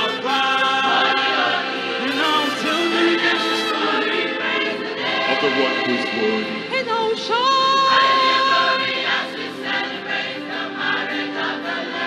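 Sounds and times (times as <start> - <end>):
choir singing gospel: 0.0 - 12.0.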